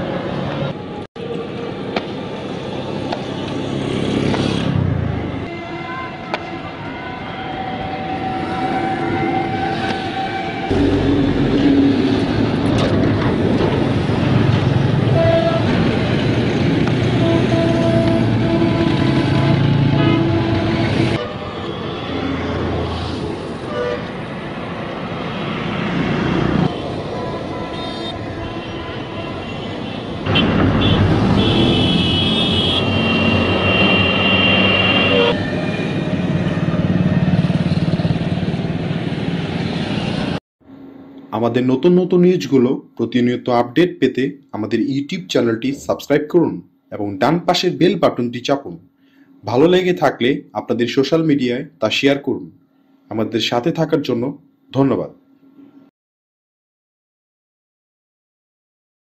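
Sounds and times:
loud road traffic: 0.0s - 41.3s, 48.9s - 49.4s
vehicle horns: 15.1s - 15.8s, 17.0s - 22.5s, 23.6s - 24.3s, 26.7s - 35.6s.

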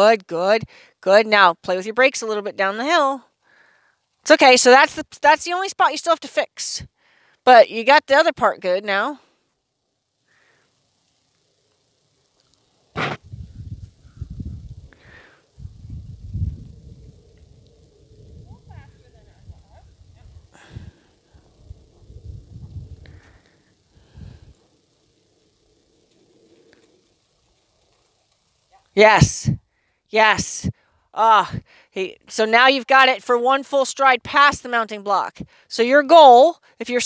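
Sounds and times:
wind buffeting microphone: 13.1s - 23.3s.

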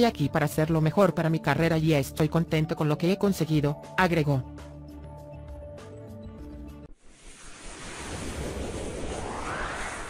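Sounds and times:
whoosh with rising sweep: 6.9s - 10.0s.

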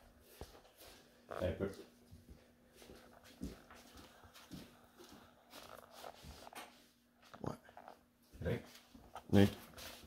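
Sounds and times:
soft footsteps on indoor floor: 0.0s - 10.0s.

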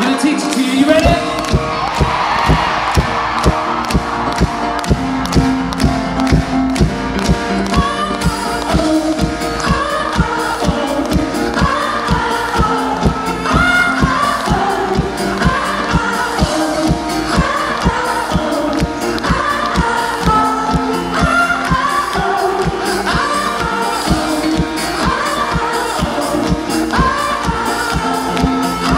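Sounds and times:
man singing into microphone: 0.0s - 1.6s
bass: 0.8s - 28.9s
drum beat: 1.0s - 9.0s, 9.6s - 18.5s, 19.3s - 28.9s.

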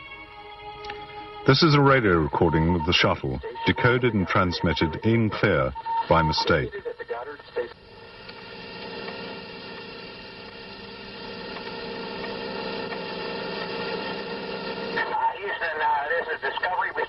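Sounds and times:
held radio tones: 1.5s - 10.2s, 12.6s - 17.0s
radio hiss: 1.5s - 17.0s
person speaking over radio: 2.8s - 7.7s, 15.1s - 17.0s.

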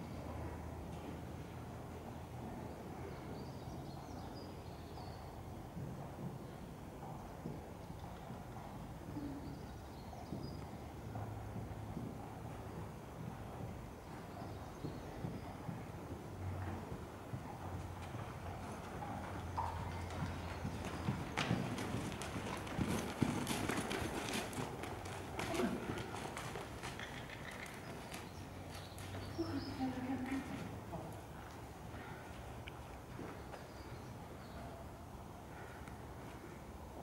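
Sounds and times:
horse hoofbeats on soft footing: 5.7s - 34.6s.

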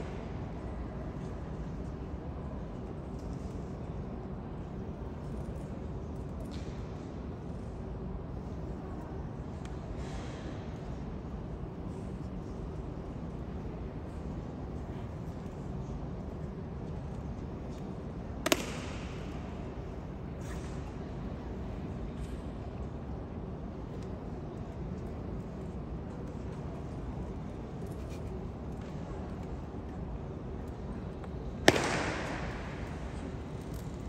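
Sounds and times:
low rumble of hall noise: 0.0s - 34.0s
sharp echoing crack: 18.4s - 19.6s, 31.6s - 33.9s.

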